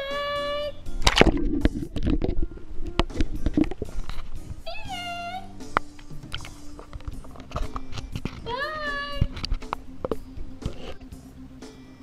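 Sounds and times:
handling noise on microphone: 1.0s - 4.8s, 5.7s - 11.1s.

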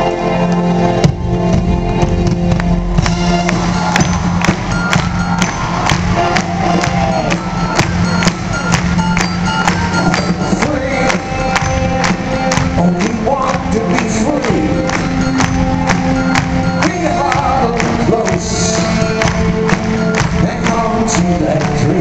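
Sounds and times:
live band music: 0.0s - 22.0s
percussion beat: 1.0s - 22.0s.

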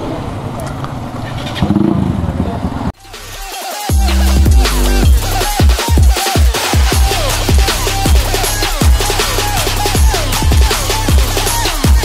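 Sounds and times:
motorcycle engines running: 0.0s - 3.0s, 6.9s - 12.0s.

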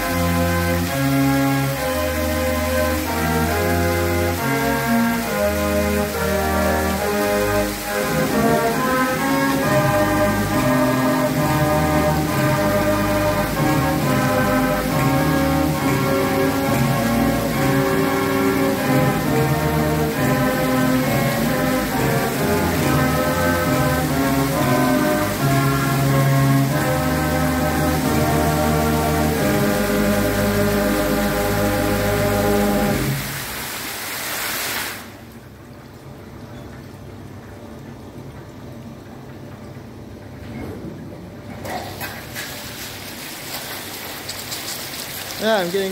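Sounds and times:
show music playing: 0.0s - 33.2s
fountain jets hissing and splashing: 0.0s - 35.6s, 41.6s - 45.9s
faint hiss: 42.6s - 45.9s.

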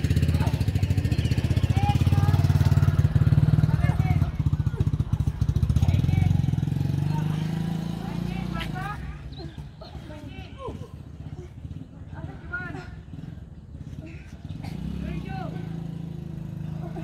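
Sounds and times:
voices calling out: 0.0s - 17.0s.

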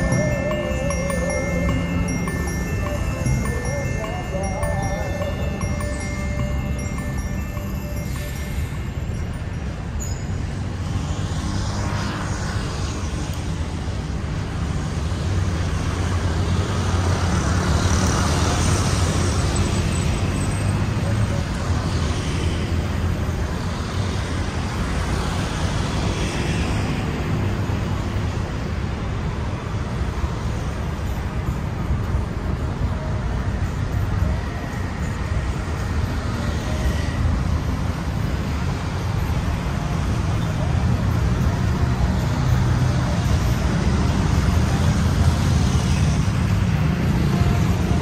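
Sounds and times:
road traffic rumble: 0.0s - 48.0s.

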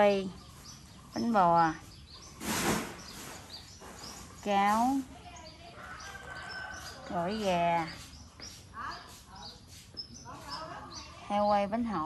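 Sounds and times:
faint bird chirps: 0.0s - 12.0s
outdoor background noise: 0.0s - 12.0s.

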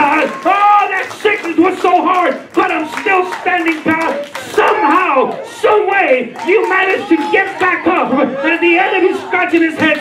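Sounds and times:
man preaching into a microphone: 0.0s - 10.0s.

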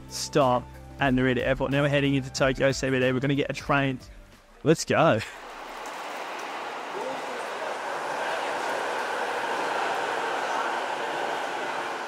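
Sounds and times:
electric train pulling into station: 5.3s - 12.0s.

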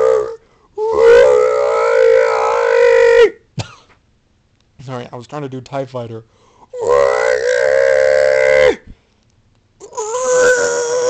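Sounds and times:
man imitating engine scream: 0.0s - 3.4s, 6.7s - 8.9s, 9.8s - 11.0s.

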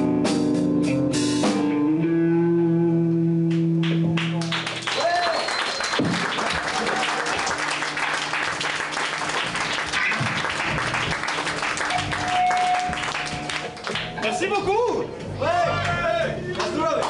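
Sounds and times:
audience applauding: 3.8s - 14.4s.

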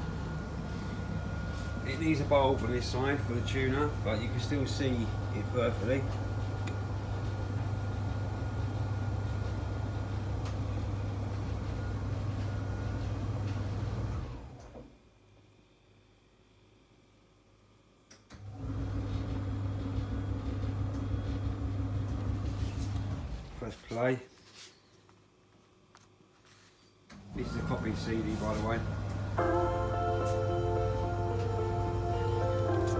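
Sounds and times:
steady higher tone: 27.4s - 32.9s.

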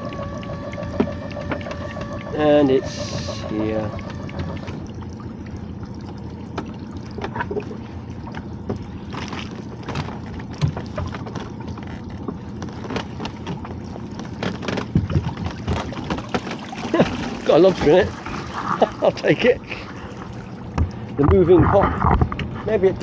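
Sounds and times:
splashing and dripping water: 0.0s - 21.2s
low boat hum: 0.0s - 23.0s
water sloshing: 0.0s - 23.0s.

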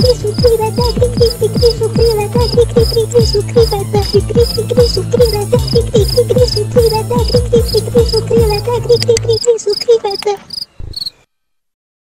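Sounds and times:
music track: 0.0s - 10.9s
cricket chirps: 9.3s - 11.2s.

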